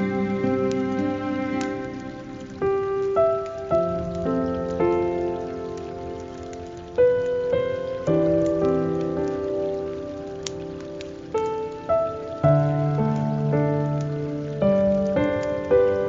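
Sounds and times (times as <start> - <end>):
falling water hiss: 0.0 - 16.0.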